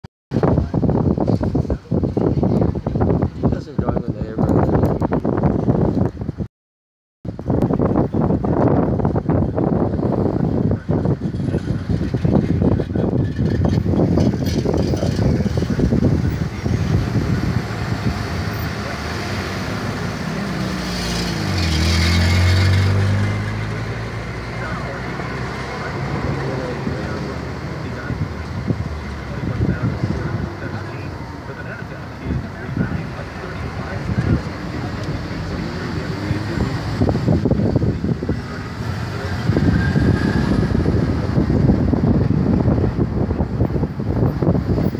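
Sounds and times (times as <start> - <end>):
city traffic and road noise: 0.3 - 6.5, 7.2 - 44.9
vehicle engine passing by: 10.8 - 44.9.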